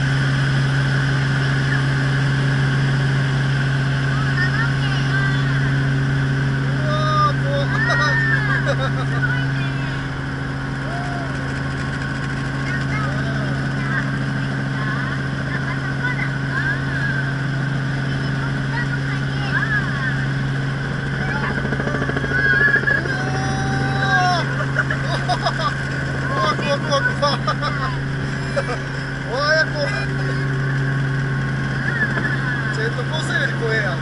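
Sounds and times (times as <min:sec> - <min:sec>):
helicopter engine and rotors droning: 0:00.0 - 0:34.0.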